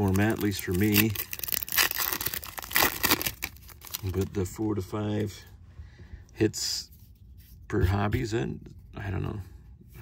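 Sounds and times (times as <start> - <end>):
foil wrapper tearing: 0.0 - 4.3.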